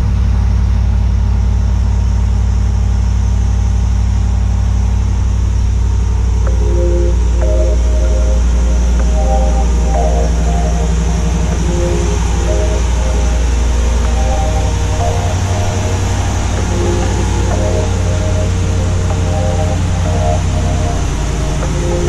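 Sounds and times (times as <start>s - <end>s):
truck engine idling: 1.0s - 22.0s
simple background melody: 6.0s - 22.0s.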